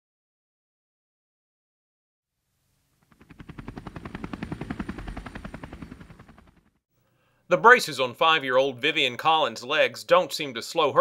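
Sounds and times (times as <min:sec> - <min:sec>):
helicopter rotor beating: 0:03.0 - 0:06.8.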